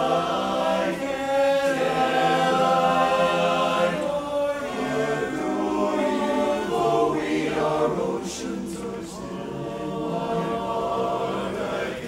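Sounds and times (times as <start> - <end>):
men's chorus singing in harmony: 0.0 - 12.0.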